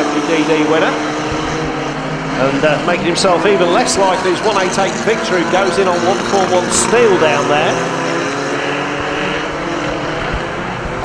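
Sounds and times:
car engines revving high: 0.0s - 11.0s
wheels spinning on dirt: 0.0s - 11.0s.

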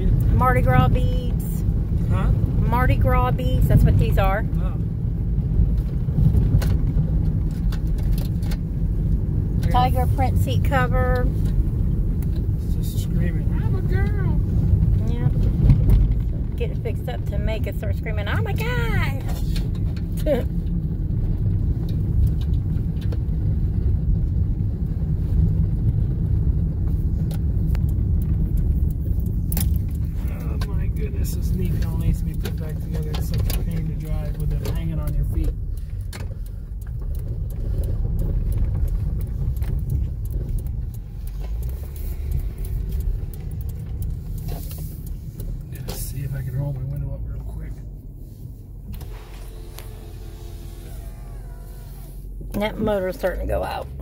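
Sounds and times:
tyre and road noise rumble: 0.0s - 54.0s.

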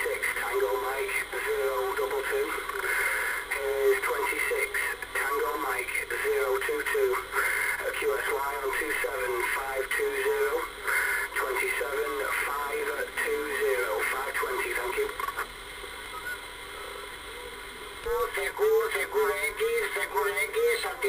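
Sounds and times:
thin radio voice through speaker: 0.0s - 15.5s, 16.7s - 21.0s
radio band hiss: 0.0s - 21.0s.

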